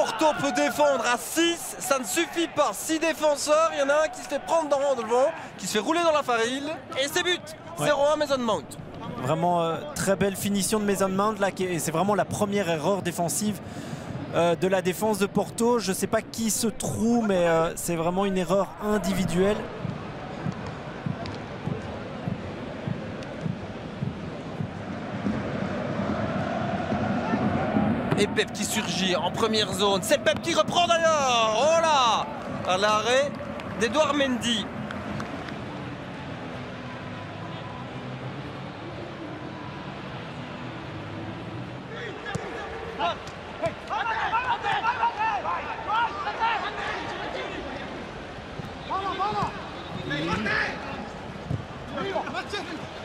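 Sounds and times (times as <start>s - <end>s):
footballers shouting: 0.0s - 8.3s, 16.9s - 20.5s, 25.8s - 34.7s, 41.8s - 51.1s, 51.9s - 53.0s.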